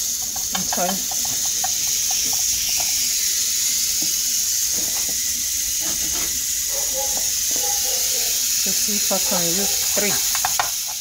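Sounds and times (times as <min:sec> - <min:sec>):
burger patties sizzling on grill: 0:00.0 - 0:11.0.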